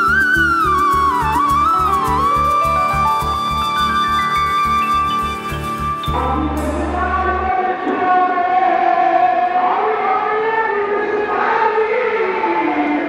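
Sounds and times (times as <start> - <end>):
person chanting: 6.1 - 13.0.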